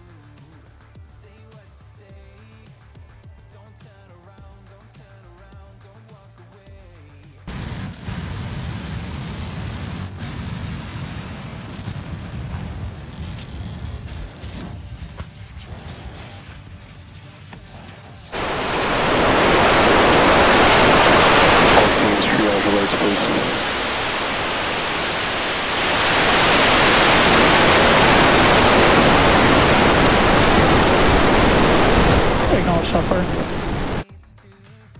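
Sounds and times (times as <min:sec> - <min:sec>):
rumbling explosions: 0:07.6 - 0:13.4, 0:18.4 - 0:34.0
rocket engine roar: 0:18.4 - 0:34.0.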